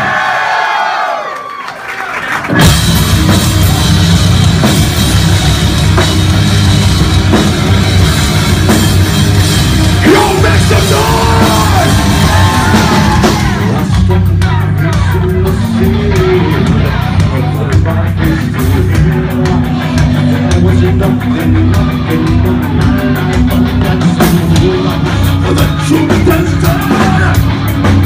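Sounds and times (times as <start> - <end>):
heavy rock band playing: 2.2 - 28.0
person shouting: 10.0 - 13.7
person singing: 10.0 - 27.5.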